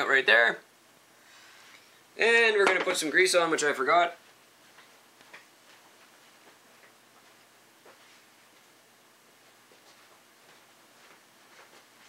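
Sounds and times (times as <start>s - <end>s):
person speaking: 2.2s - 4.2s
faint clicks and taps: 4.6s - 8.1s.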